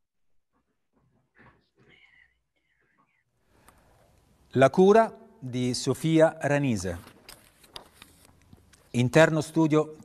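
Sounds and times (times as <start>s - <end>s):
faint whispered voice: 1.7s - 3.4s.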